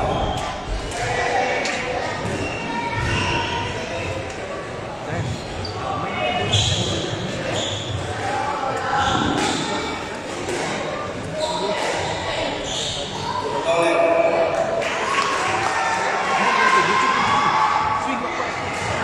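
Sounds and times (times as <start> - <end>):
chatter of voices: 0.0 - 19.0.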